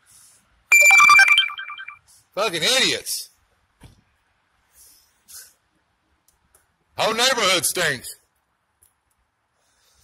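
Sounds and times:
phone alert beeping tone: 0.7 - 2.0.

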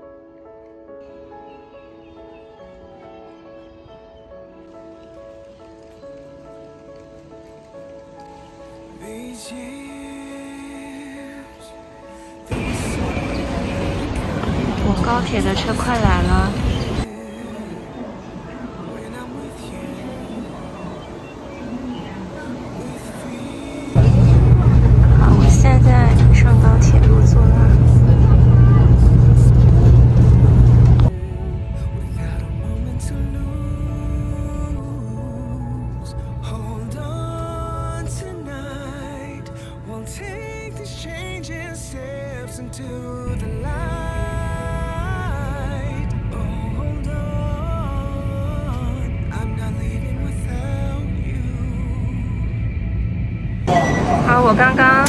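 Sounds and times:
soft background music: 0.0 - 55.0
train rumbling past: 12.4 - 55.0
soft instrumental melody: 31.1 - 51.8.

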